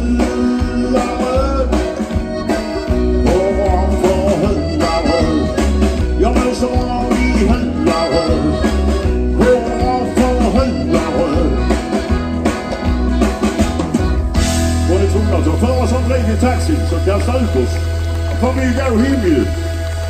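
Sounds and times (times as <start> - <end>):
man singing: 0.0 - 12.4
live band music: 0.0 - 20.0.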